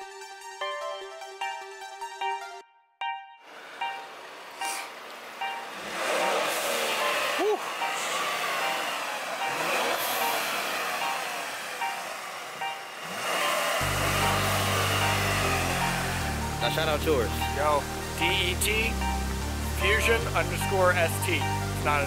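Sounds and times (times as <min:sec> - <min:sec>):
rising and falling tone: 0:03.2 - 0:20.8
street traffic: 0:03.4 - 0:22.0
bass-heavy beat: 0:13.8 - 0:22.0.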